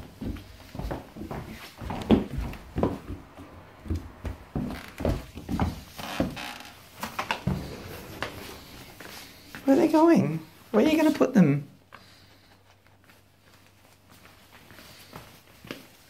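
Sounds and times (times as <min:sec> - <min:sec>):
footsteps on wooden floor: 0:00.0 - 0:09.7
handling noise: 0:07.0 - 0:09.8.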